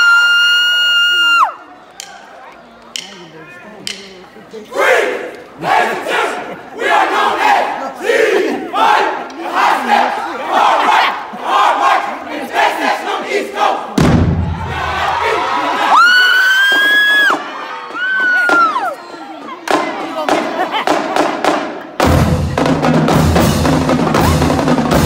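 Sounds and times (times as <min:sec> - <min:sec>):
group shouting rhythmic chant: 0:04.7 - 0:16.1
deep drum hit: 0:14.0 - 0:14.9.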